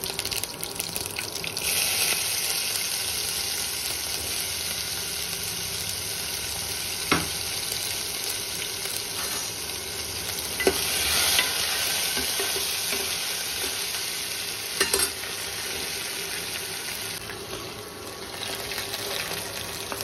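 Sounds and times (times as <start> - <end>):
spices sizzling in hot oil: 0.0 - 20.0
steel ladle clinking against pan: 14.8 - 15.2.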